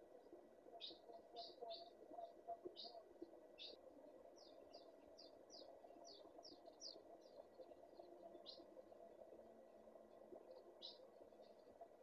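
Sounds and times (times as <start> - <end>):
faint bird chirps: 0.7 - 3.0, 3.6 - 3.8, 4.4 - 8.7, 10.5 - 11.7.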